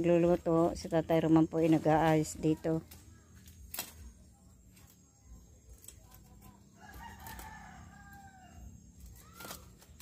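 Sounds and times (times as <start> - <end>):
faint rooster crowing: 6.8 - 9.6.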